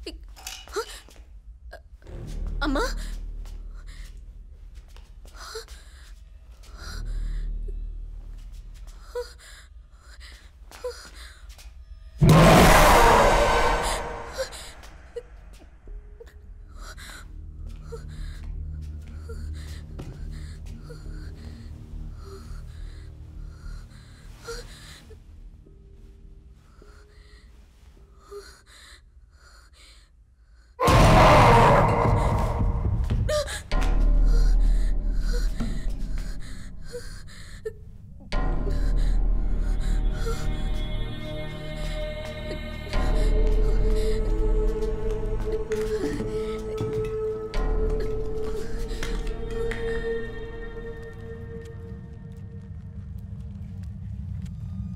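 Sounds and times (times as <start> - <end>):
dark horror music: 0.0 - 29.8, 30.6 - 54.9
woman gasping in fright: 12.9 - 15.3
low rumble: 30.9 - 54.9.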